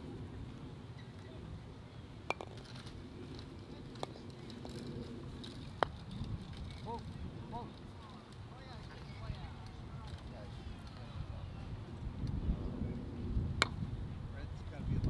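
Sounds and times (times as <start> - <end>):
outdoor background: 0.0 - 15.0
croquet mallet striking ball: 2.3 - 2.6.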